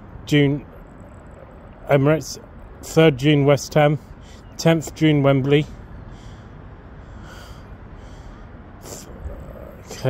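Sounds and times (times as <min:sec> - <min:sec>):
person breathing: 0:06.1 - 0:09.3.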